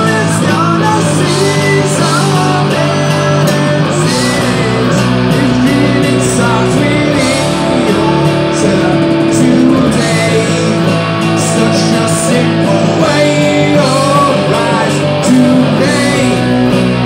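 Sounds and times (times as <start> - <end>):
electric guitar bending notes: 0.0 - 17.0
electronic drum kit: 0.0 - 17.0.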